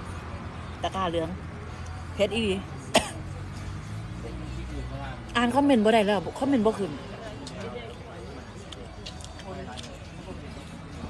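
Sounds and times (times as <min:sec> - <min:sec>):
woman coughing: 0:02.8 - 0:03.3.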